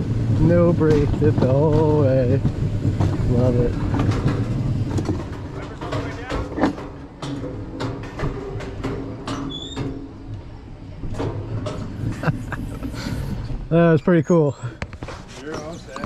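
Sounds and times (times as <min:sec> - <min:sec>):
wheels clicking and knocking: 0:00.0 - 0:12.9
sled rumbling on metal rails: 0:00.0 - 0:16.0.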